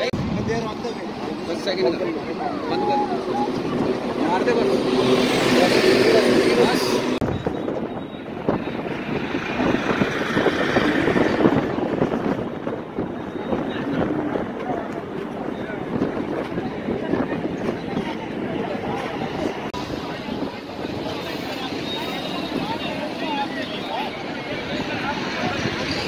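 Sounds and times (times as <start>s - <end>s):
crowd talking indistinctly: 0.0s - 26.0s
outdoor background noise: 0.0s - 26.0s.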